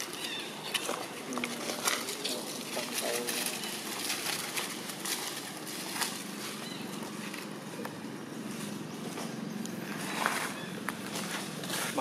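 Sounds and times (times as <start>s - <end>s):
dry leaves rustling and crackling: 0.0s - 12.0s.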